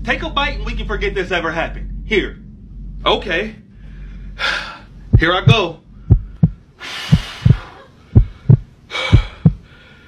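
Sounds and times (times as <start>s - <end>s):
heartbeat thumps: 1.8s - 9.7s
breathy hiss: 3.6s - 5.2s, 5.8s - 10.0s.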